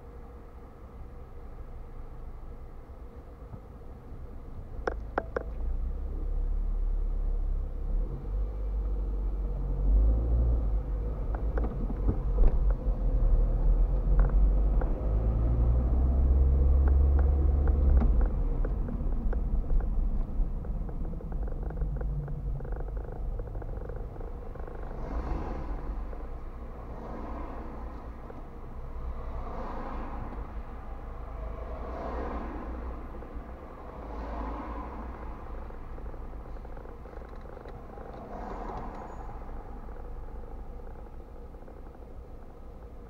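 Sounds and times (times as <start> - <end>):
car engine and tyre rumble: 0.0 - 43.0.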